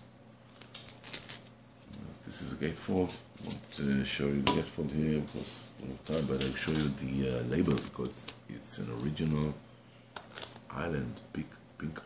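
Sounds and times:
plastic sleeve crinkling: 0.5 - 2.2, 6.0 - 9.4, 10.2 - 10.7.

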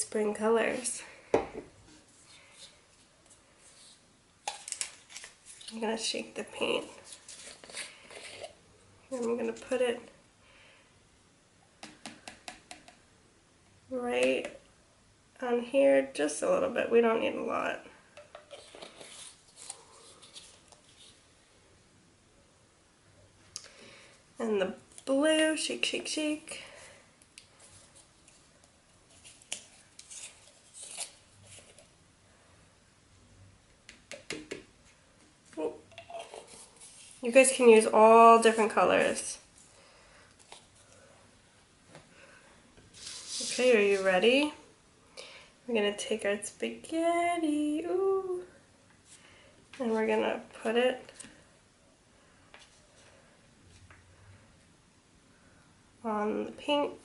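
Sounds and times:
plastic bottle cap twisting: 7.1 - 8.6, 18.2 - 20.9.

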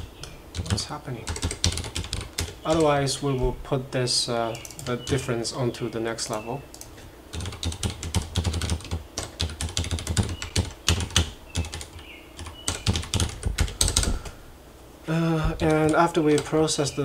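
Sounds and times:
typing on computer keyboard: 0.0 - 2.9, 6.7 - 14.3, 15.6 - 16.5.

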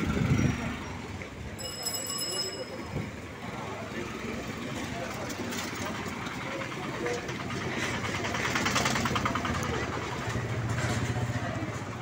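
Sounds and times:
voices: 0.0 - 12.0
engine running: 4.3 - 12.0
rapid pulsing rattle: 5.9 - 10.8.

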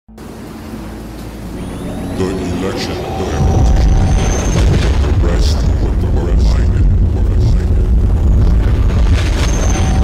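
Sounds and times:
deep rumbling drone: 0.1 - 10.0
high whistling tones: 1.6 - 5.8, 9.3 - 10.0.

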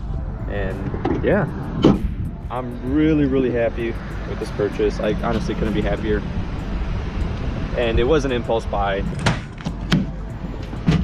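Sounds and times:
low steady rumble: 0.0 - 10.8.

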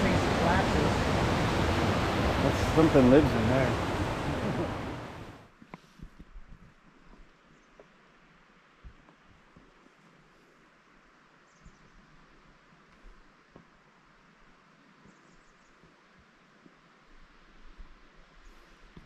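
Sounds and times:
outdoor rushing hiss: 0.0 - 6.1.

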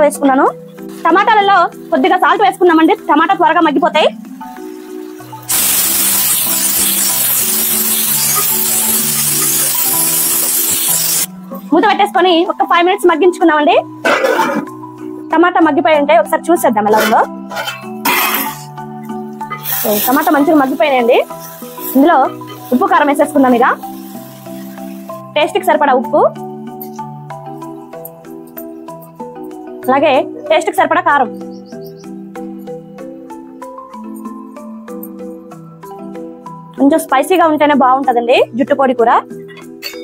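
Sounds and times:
background music with held notes: 0.0 - 40.0
vegetables sizzling in a pan: 4.4 - 11.3, 19.4 - 25.3.

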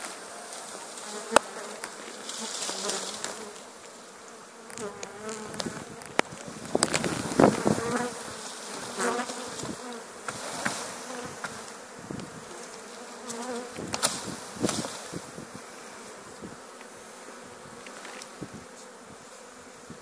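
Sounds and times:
branch clicks and leaves rustling: 0.0 - 4.0
bees buzzing loudly: 0.0 - 20.0.

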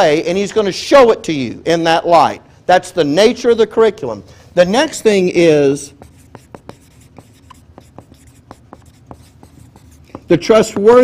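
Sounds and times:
marker squeaking on whiteboard: 5.9 - 11.0.

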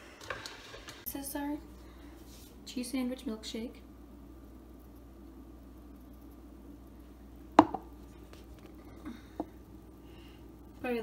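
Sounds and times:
faint steady hum: 0.0 - 11.0
blender jar knocking on countertop: 7.6 - 7.9.

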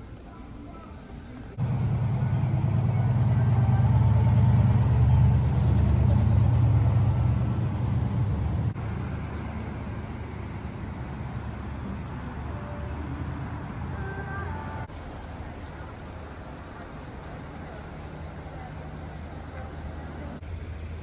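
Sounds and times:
traffic rumble: 0.0 - 21.0.

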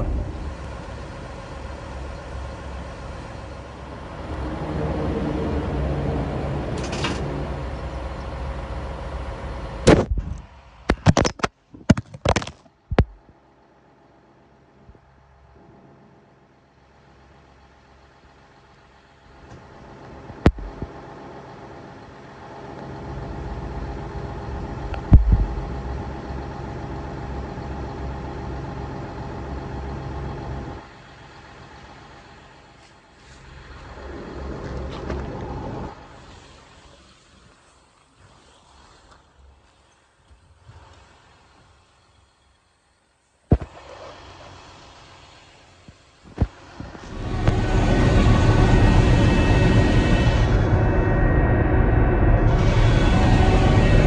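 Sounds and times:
engine running: 0.0 - 54.0
loud thump: 9.9 - 10.4, 25.1 - 25.6.

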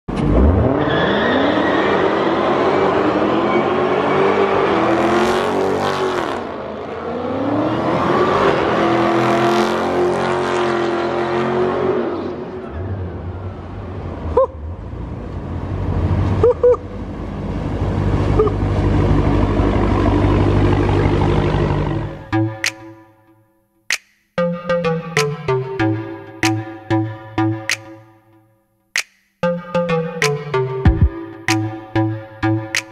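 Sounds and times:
car engine revving hard: 0.1 - 12.6.

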